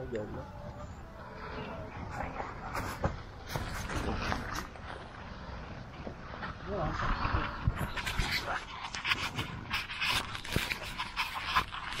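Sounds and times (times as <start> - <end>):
leaves rustling: 1.2 - 12.0.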